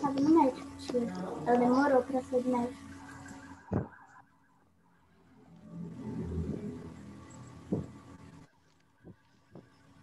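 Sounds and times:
low rumble: 5.0 - 10.0.

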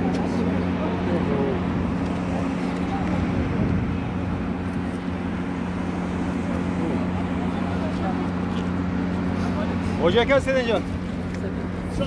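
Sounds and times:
crowd of people talking: 0.0 - 12.0
steady low hum: 0.0 - 12.0.

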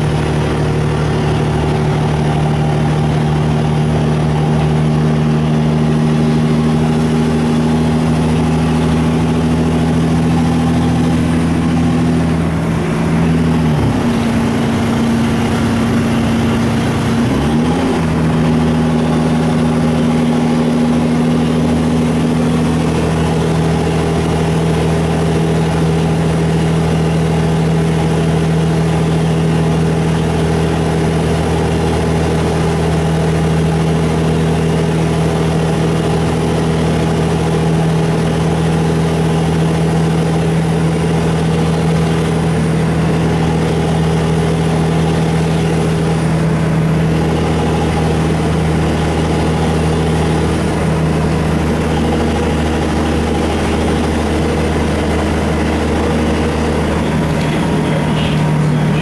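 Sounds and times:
bus engine hum: 0.0 - 59.0.

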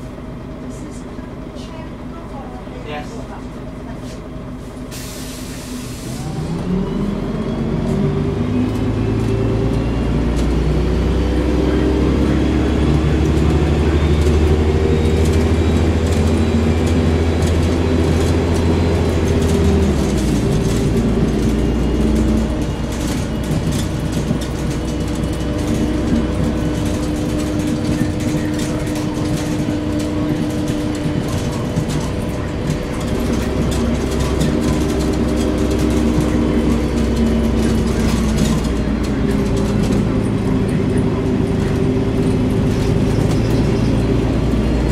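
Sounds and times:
bus diesel engine accelerating: 0.0 - 44.9.

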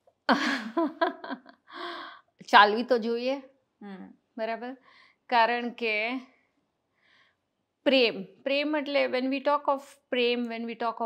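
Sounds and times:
woman laughing: 0.3 - 1.8.

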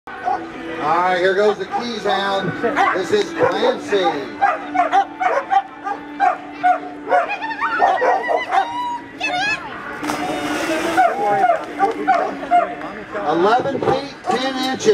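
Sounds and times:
dog barking and whining: 4.4 - 8.8.

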